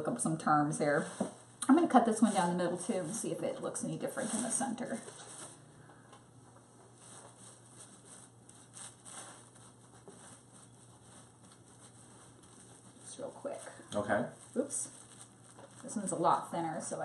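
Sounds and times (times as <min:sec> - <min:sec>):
plastic wrap crinkling: 0:01.8 - 0:05.6, 0:06.8 - 0:17.0
knife sawing through cake: 0:07.1 - 0:15.9.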